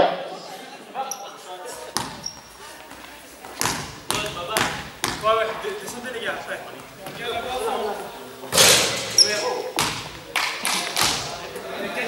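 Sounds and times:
basketball bouncing on floor: 0:01.9 - 0:06.1, 0:09.8 - 0:10.2.

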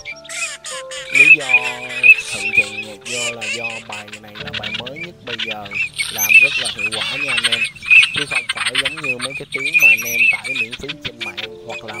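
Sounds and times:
duck calls: 0:00.0 - 0:12.0
music track: 0:00.0 - 0:12.0
man talking: 0:01.1 - 0:12.0.

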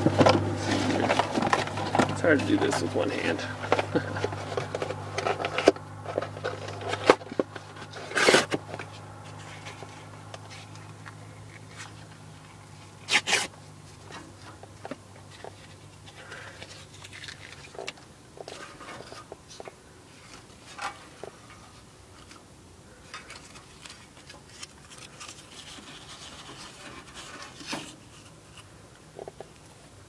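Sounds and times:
paper crinkling bursts: 0:00.0 - 0:14.6, 0:15.3 - 0:22.4, 0:23.0 - 0:28.7
cardboard and paper rustling: 0:00.0 - 0:30.0
low background hum: 0:00.0 - 0:30.0.

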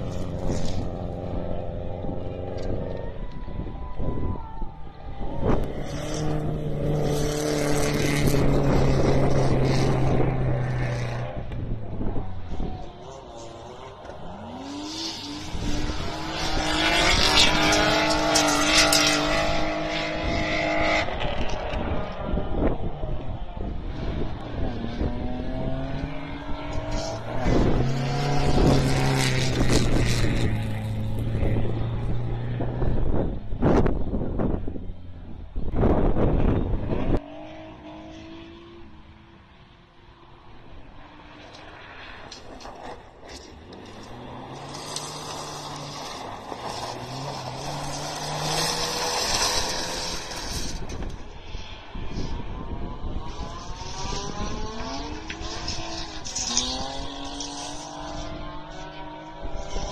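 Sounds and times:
rally car engines revving hard: 0:00.0 - 0:04.0, 0:05.0 - 0:34.8, 0:35.5 - 0:59.9.

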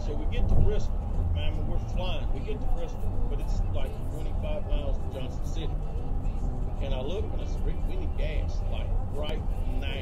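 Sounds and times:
car road and engine noise: 0:00.0 - 0:10.0.

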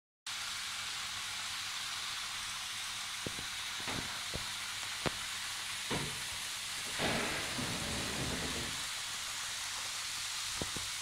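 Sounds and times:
steady hiss: 0:00.3 - 0:11.0.

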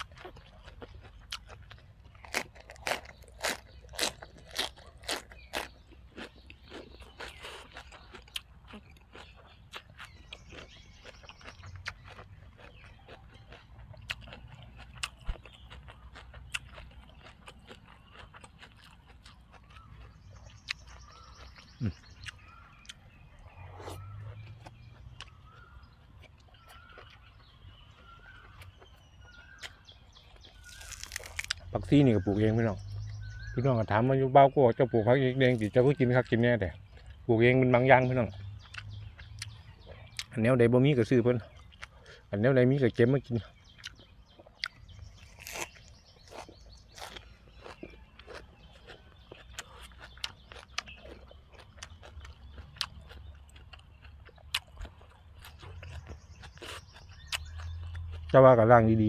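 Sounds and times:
chewing: 0:00.0 - 0:33.6, 0:34.8 - 0:58.7
crunching vegetable stalk: 0:00.0 - 0:34.0, 0:35.2 - 0:59.0.

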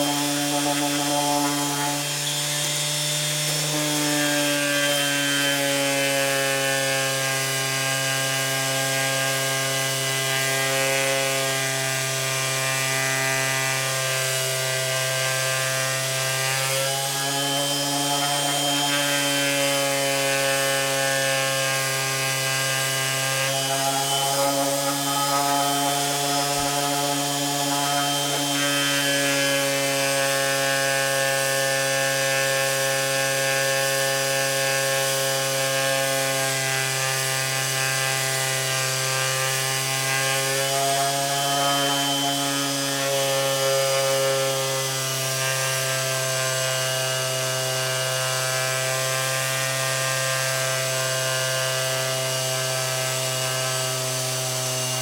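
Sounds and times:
electric sander sanding wood: 0:00.0 - 0:55.0.

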